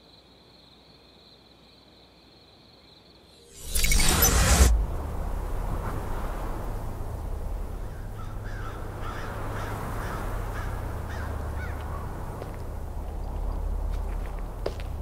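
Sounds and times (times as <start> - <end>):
low wind rumble: 3.5 - 15.0
harsh bird calls: 7.8 - 12.2.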